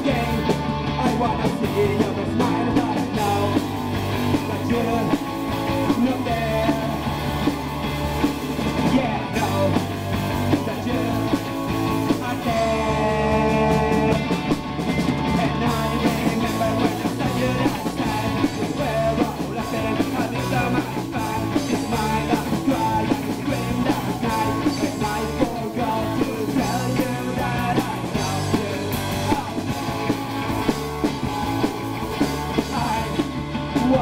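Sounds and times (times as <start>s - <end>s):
person singing: 0.0s - 7.2s, 8.8s - 14.5s, 15.3s - 30.2s, 32.3s - 34.0s
live punk rock band: 0.0s - 34.0s.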